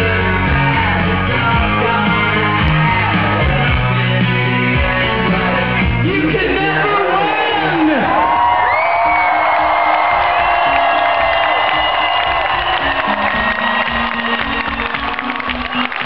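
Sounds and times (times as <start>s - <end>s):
crowd cheering and whooping: 0.0s - 3.8s, 6.9s - 16.0s
electronic pop music: 0.0s - 16.0s.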